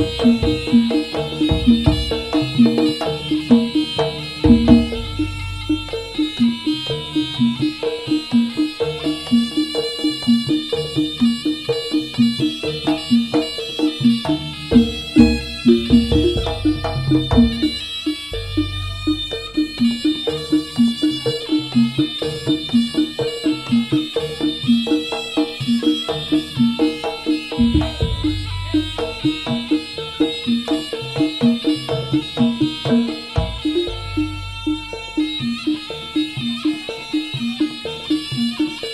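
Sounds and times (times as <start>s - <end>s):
high wavering melody: 0.0s - 38.9s
pitched metal instruments struck: 0.0s - 38.9s.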